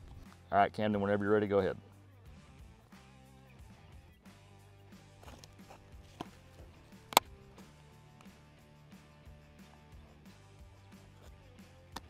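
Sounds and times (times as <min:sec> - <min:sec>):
background music with low tones: 0:00.0 - 0:12.0.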